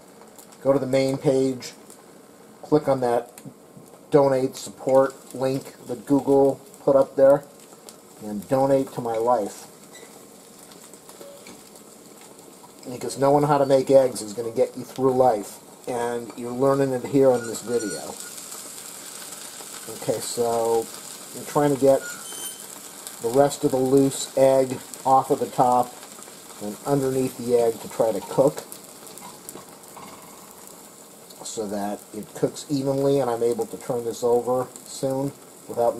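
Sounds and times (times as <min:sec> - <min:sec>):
egg sizzling in a pan: 0:00.0 - 0:35.9.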